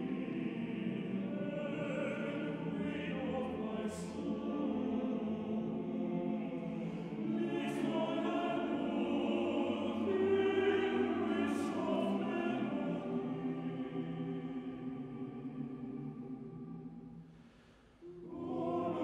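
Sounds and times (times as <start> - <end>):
male choir singing: 0.0 - 17.0, 18.0 - 19.0.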